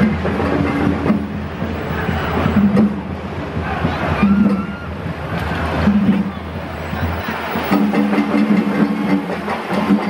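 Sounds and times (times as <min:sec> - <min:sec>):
street parade din: 0:00.0 - 0:10.0
vehicle rumbling: 0:00.0 - 0:10.0.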